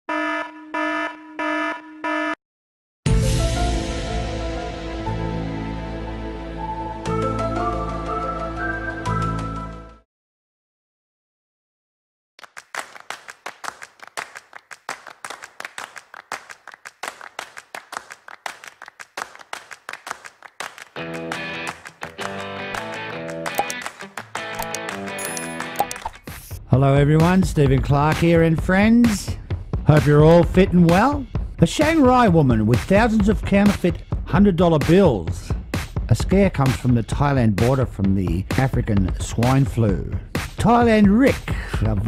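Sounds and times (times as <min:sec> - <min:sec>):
electronic alarm beeping: 0:00.1 - 0:02.4
sharp hand claps: 0:12.4 - 0:26.0, 0:40.4 - 0:40.6.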